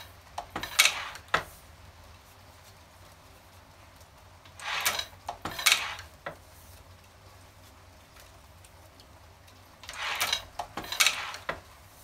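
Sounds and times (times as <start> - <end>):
printing press clattering and clicking: 0.4 - 1.5, 4.6 - 6.1, 9.8 - 11.6.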